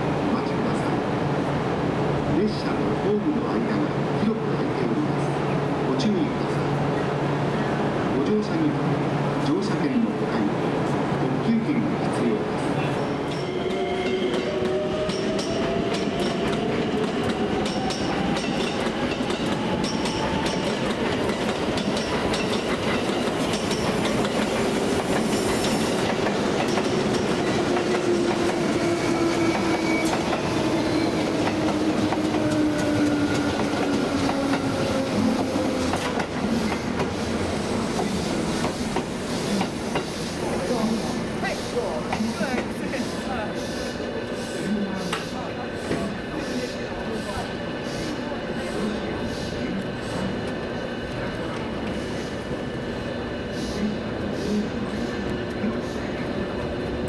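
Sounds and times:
train wheel and rail noise: 0.0s - 57.0s.

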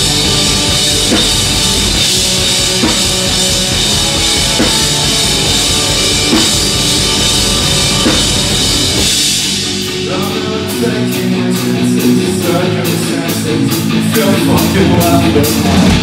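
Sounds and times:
bass: 0.0s - 16.0s
distorted guitar: 0.0s - 16.0s
drums: 0.0s - 16.0s.

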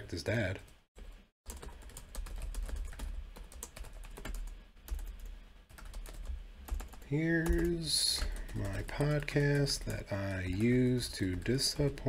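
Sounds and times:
computer keyboard typing: 1.5s - 12.0s.

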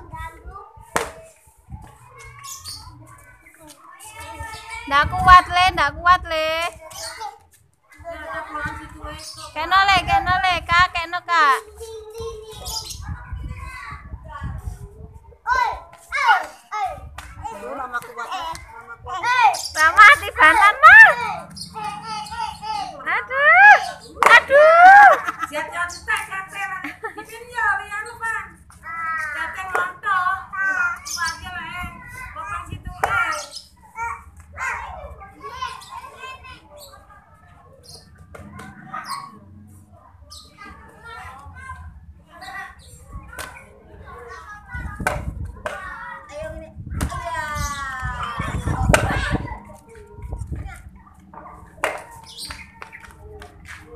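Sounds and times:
children calling and chattering: 0.0s - 53.9s.

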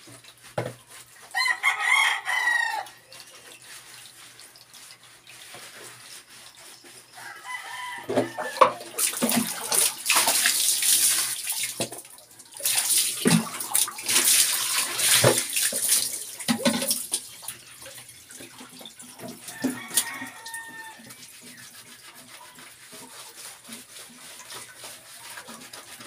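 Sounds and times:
water pouring and splashing: 0.0s - 26.0s
small splashes: 8.2s - 26.0s.

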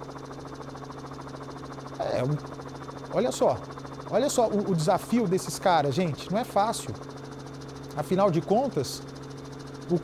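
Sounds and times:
helicopter engine hum: 0.0s - 10.0s.

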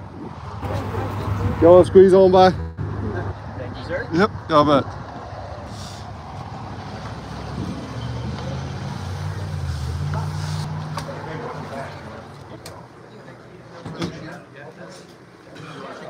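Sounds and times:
vehicle engine hum: 0.5s - 13.1s
indistinct voices: 0.6s - 5.0s.

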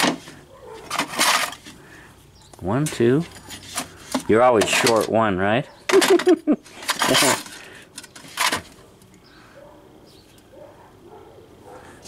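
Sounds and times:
metal parts clinking and rattling: 2.8s - 5.2s, 5.9s - 8.8s
person laughing: 5.9s - 7.4s.

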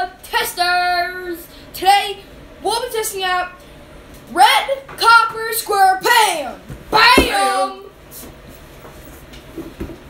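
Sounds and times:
soft low thump: 7.2s - 7.5s.

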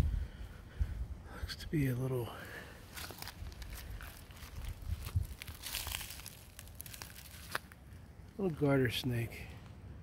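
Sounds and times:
dry leaves crackling and rustling: 2.9s - 8.6s.

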